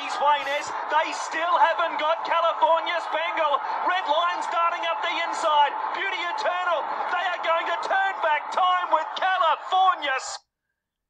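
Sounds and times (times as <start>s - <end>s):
race commentator speaking fast: 0.0s - 10.4s.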